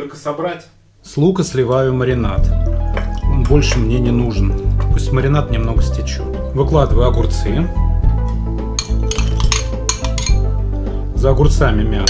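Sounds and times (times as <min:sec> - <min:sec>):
background music: 0:01.2 - 0:12.0
knife and bowls clinking: 0:08.7 - 0:10.5.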